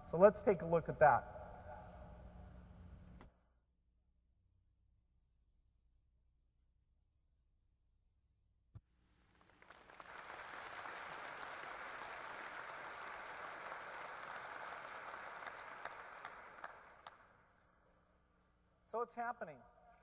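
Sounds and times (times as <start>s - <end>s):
audience applauding: 9.3s - 17.2s.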